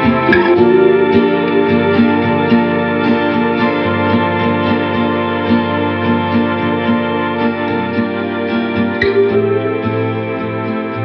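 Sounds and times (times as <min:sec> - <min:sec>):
indie-folk song with guitar: 0:00.0 - 0:11.0.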